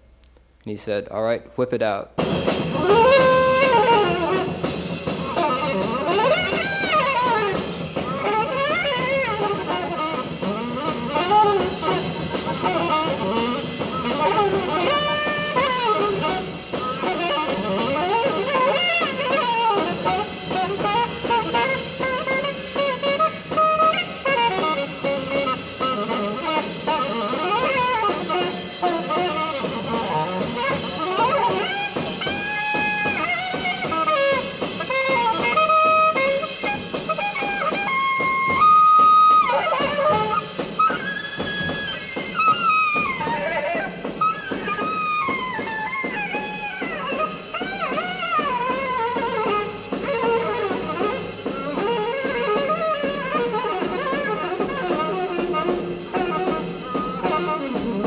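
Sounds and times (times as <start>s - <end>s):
band backing: 0.0s - 58.0s
alto saxophone solo: 2.3s - 58.0s.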